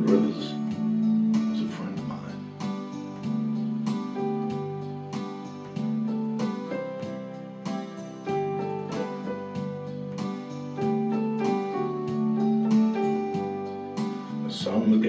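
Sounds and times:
electric keyboard piano chords and melody: 0.0 - 15.0.

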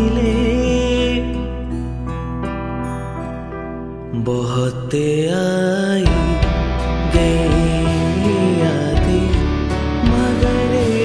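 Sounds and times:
man singing: 0.0 - 2.1, 4.1 - 11.0
electronic keyboard chords: 0.0 - 4.9, 6.0 - 11.0.

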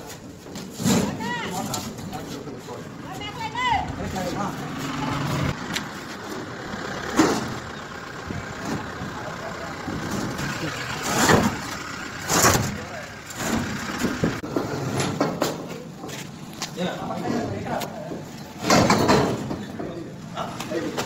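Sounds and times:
metal knocking and scraping on truck bed: 6.2 - 9.2, 9.8 - 16.2, 17.1 - 20.1.

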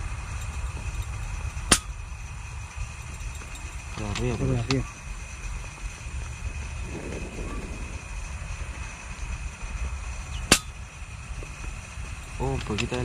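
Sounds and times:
wind rumble on microphone: 6.2 - 10.6.

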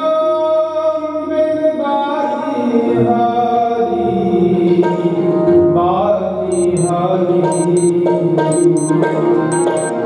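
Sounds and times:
instrumental accompaniment: 6.6 - 6.9, 7.5 - 7.9, 8.5 - 10.0.

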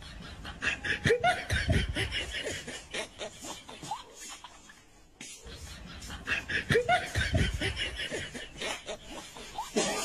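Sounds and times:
person laughing in rapid bursts: 0.0 - 10.0.

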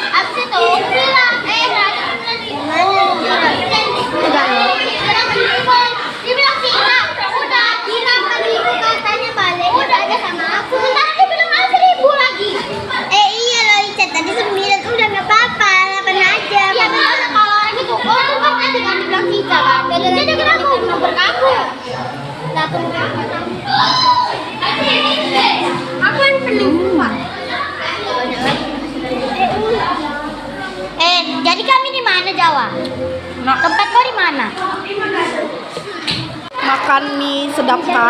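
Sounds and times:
children talking and shouting: 0.0 - 38.0.

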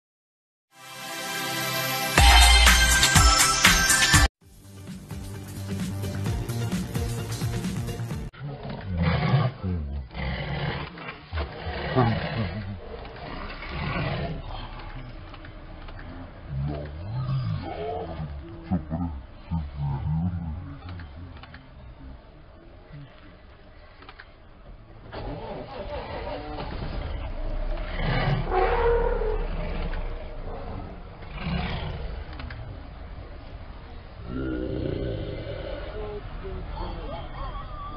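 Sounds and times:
music: 0.7 - 8.3
tiger roaring and growling: 8.4 - 24.2, 25.1 - 36.7.

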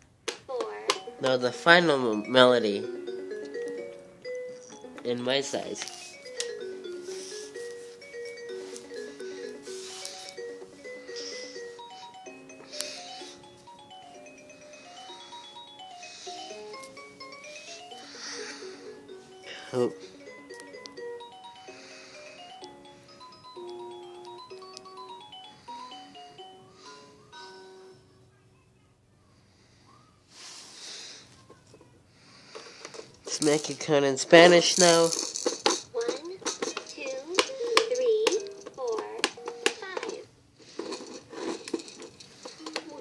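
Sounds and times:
electronic toy piano melody: 0.8 - 28.0, 36.8 - 40.1.

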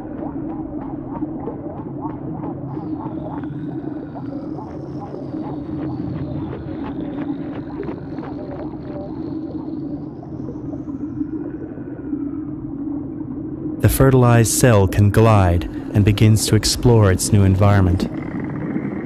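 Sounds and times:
soft small ticks: 0.0 - 11.8
steady low drone: 0.0 - 19.0.

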